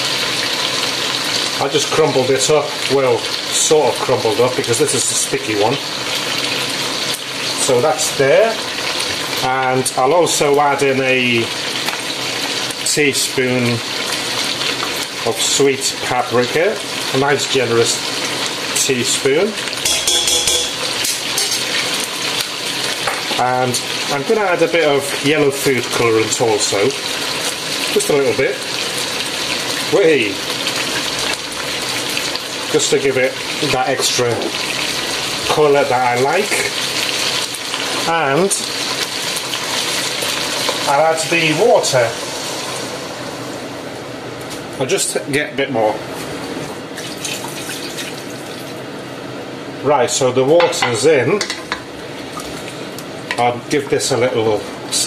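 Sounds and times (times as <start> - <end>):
food sizzling in oil: 0.0 - 44.9, 46.0 - 49.8, 50.4 - 55.0.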